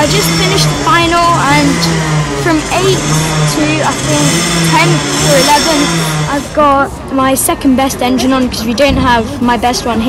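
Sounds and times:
boy talking: 0.0 - 10.0.

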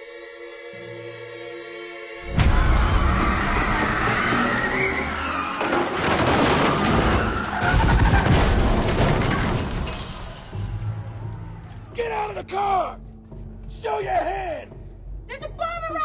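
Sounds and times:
dramatic music: 0.0 - 16.0
tyres skidding: 2.3 - 11.4.

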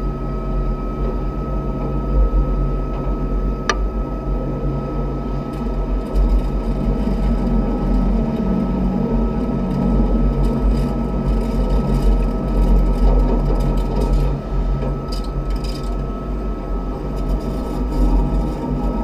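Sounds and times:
constant high hum: 0.0 - 19.0
train wheels rumbling on rail: 1.0 - 19.0.

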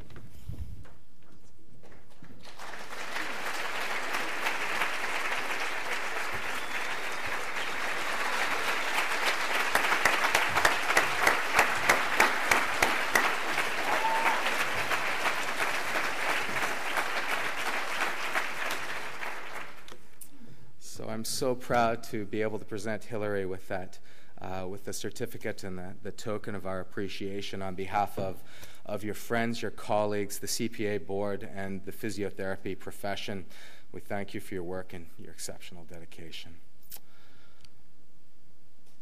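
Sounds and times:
evenly spaced claps: 1.8 - 20.1
audience applauding: 2.1 - 19.9.

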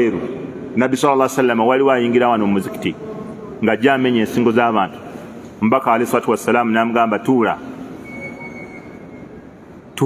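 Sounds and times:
room noise: 0.0 - 10.0
faint high whine: 7.5 - 10.0.

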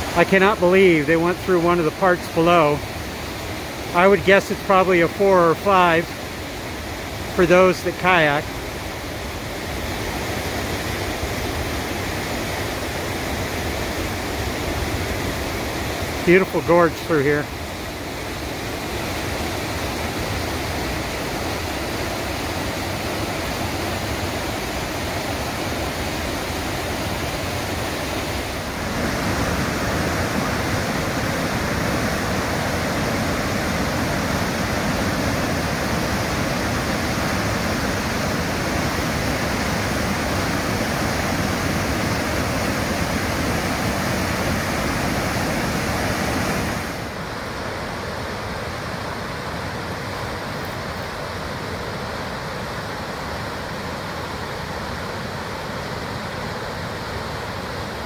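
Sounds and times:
whitewater rapids rushing: 0.0 - 58.0.

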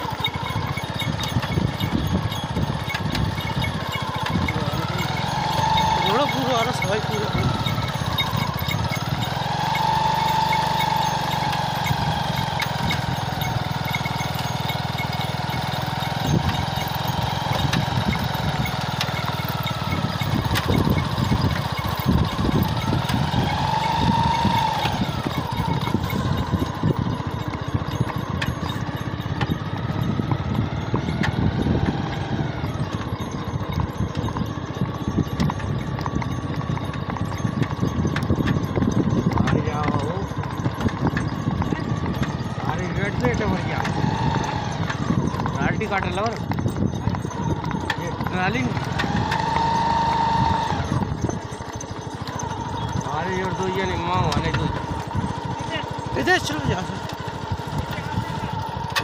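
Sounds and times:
motorcycle engine running: 0.0 - 59.0
wind buffeting microphone: 0.0 - 59.0.

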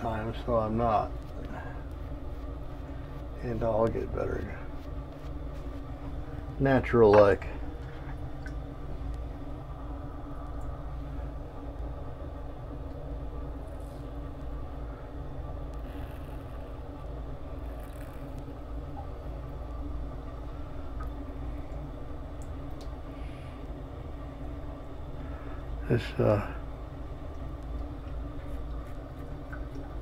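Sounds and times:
low machine hum: 0.0 - 30.0.

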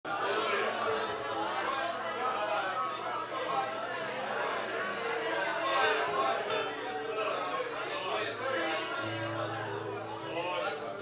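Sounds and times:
voices talking in echoing room: 0.1 - 11.0.

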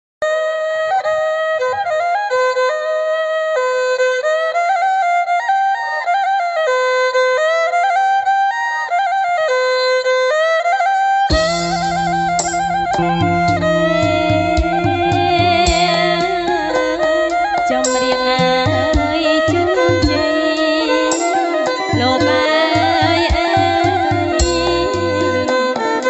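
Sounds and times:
low sustained drone: 11.3 - 25.5
ornamented instrumental melody: 11.3 - 26.0
percussion: 11.3 - 26.0.

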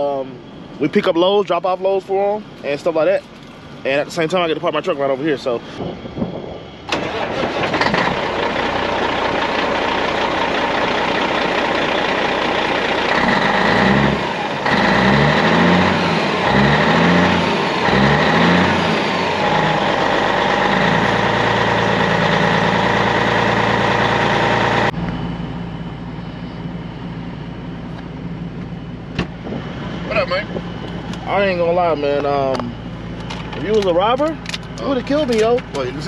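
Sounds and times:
road and cab noise: 0.0 - 36.0
truck engine running: 0.0 - 36.0.

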